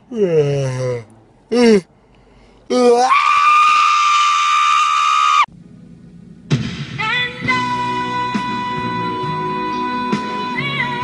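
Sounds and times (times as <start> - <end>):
man's high-pitched scream: 2.7 - 5.5
music: 5.7 - 11.0.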